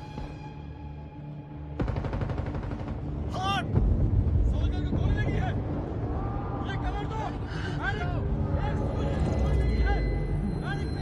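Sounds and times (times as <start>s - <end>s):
rapid automatic gunfire: 1.8s - 3.3s.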